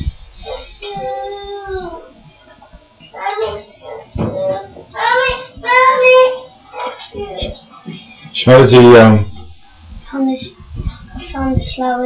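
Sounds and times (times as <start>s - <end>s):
young child speaking: 0.4s - 2.2s, 3.2s - 7.7s, 10.1s - 12.0s.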